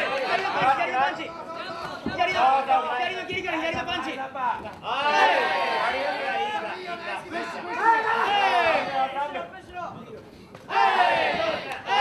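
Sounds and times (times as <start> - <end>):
people shouting: 4.8 - 6.6, 7.4 - 9.1, 10.7 - 12.0.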